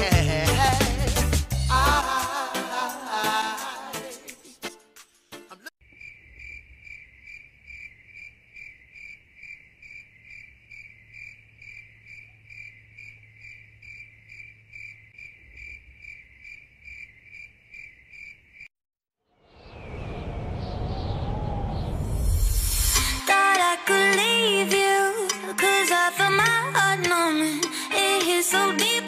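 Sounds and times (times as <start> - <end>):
cricket chirping: 5.8 - 18.7.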